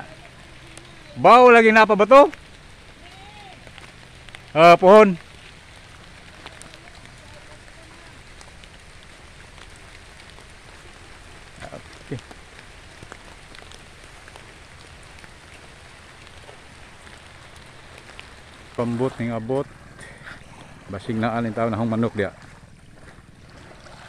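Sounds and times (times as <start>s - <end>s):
light rain pattering: 0.0s - 24.0s.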